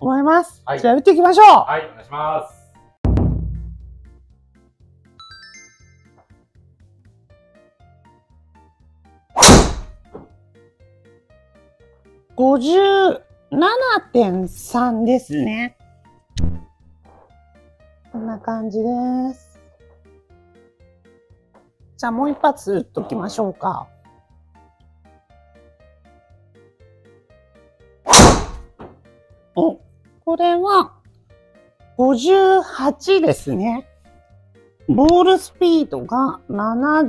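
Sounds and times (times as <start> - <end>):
faint thud: 3.0 - 4.2
golf driver hitting ball: 9.4 - 10.0, 28.1 - 28.7.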